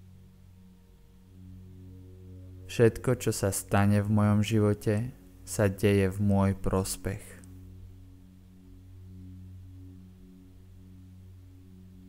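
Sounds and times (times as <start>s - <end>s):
meditation drone music: 0.0s - 12.0s.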